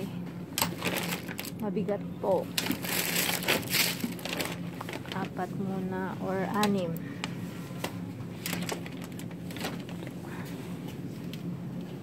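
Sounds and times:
plastic bottles crinkling: 0:00.6 - 0:01.6, 0:02.5 - 0:05.5, 0:08.4 - 0:10.2.

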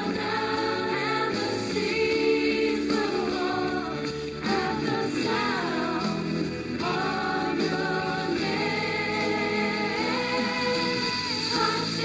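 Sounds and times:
voices singing held notes: 0:00.0 - 0:12.0.

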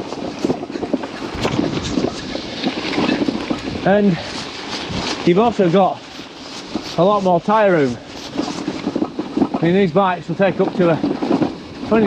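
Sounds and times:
bike tyres crunching gravel: 0:00.0 - 0:12.0
clicks and knocks from bike: 0:00.0 - 0:12.0.

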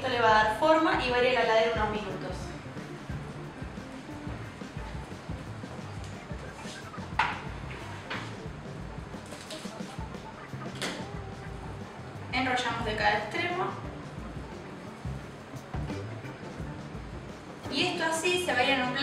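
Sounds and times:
soft background music: 0:00.0 - 0:19.0
plastic cling film crinkling: 0:09.2 - 0:09.8.

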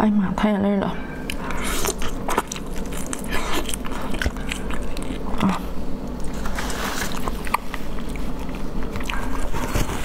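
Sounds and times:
person chewing prawn: 0:01.3 - 0:10.0.

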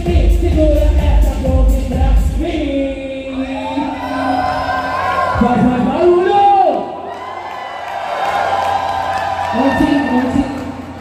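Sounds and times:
dance music: 0:00.0 - 0:06.7
crowd cheering and screaming: 0:03.4 - 0:11.0.

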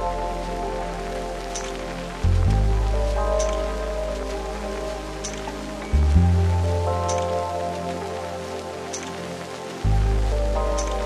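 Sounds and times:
rain pattering: 0:00.0 - 0:11.0
soft keyboard chords: 0:00.0 - 0:11.0
deep bass note: 0:02.2 - 0:04.6, 0:05.9 - 0:06.9, 0:09.8 - 0:11.0.

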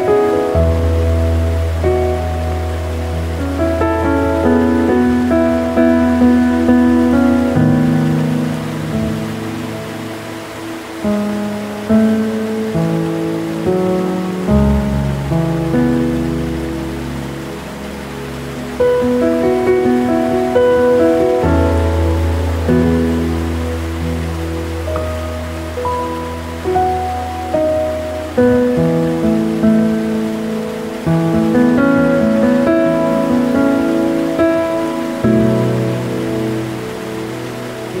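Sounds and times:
falling water rushing: 0:00.0 - 0:38.0
gentle piano music: 0:00.0 - 0:38.0.

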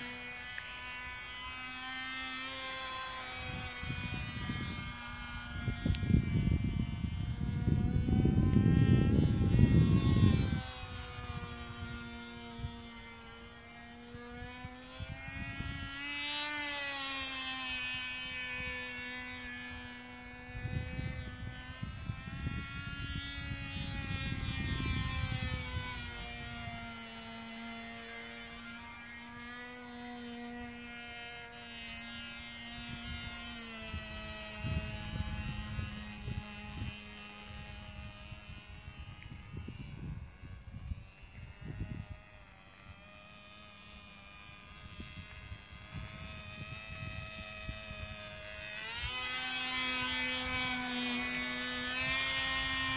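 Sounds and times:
model airplane engine: 0:00.0 - 0:52.9
wind rumble on microphone: 0:00.0 - 0:52.9.

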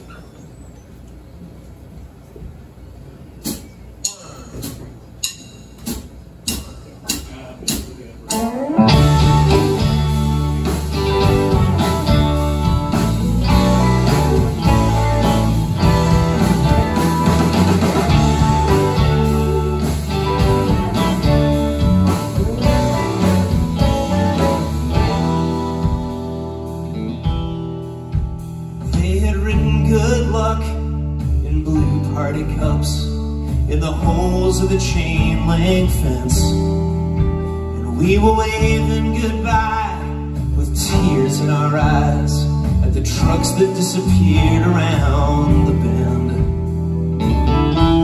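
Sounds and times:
drums: 0:00.0 - 0:48.0
electric bass: 0:08.3 - 0:48.0
electric guitars: 0:08.3 - 0:48.0.

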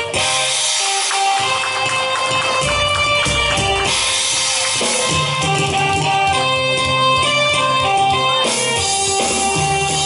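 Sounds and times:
drums and percussion: 0:00.0 - 0:10.0.

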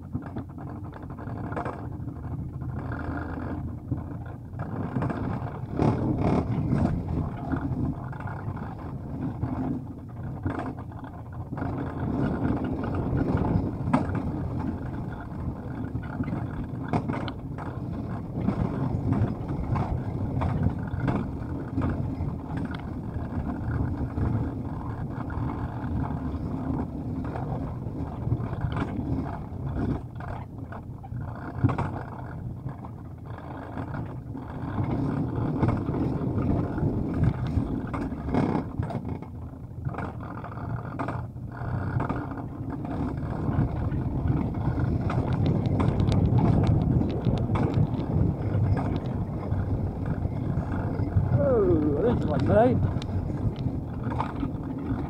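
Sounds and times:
coaster wheels rumbling on rails: 0:00.0 - 0:55.0.

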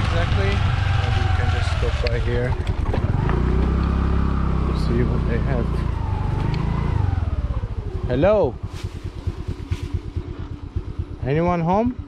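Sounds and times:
small motorbike engine idling: 0:00.0 - 0:12.0.

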